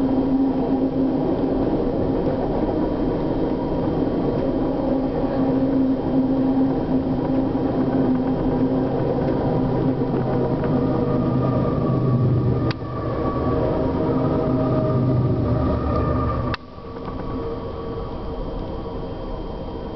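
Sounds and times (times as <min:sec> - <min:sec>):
diesel locomotive engine hum: 0:00.0 - 0:19.9.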